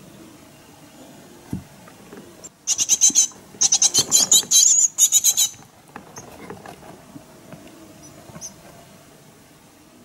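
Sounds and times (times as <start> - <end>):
low background noise: 0.0 - 10.0
short high squeaks: 2.7 - 5.6.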